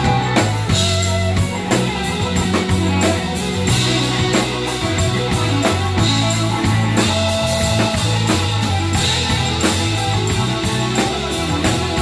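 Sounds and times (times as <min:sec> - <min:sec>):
bass guitar: 0:00.0 - 0:12.0
drum kit beat: 0:00.0 - 0:12.0
electric guitar: 0:00.0 - 0:12.0
keyboard: 0:00.0 - 0:12.0.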